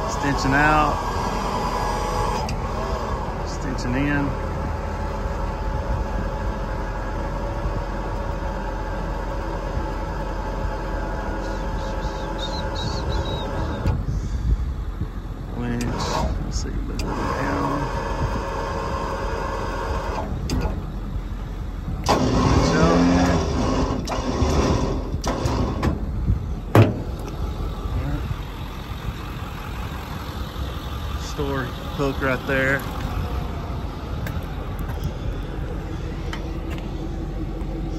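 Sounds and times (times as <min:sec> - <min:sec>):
crane motor humming: 0:00.0 - 0:37.9.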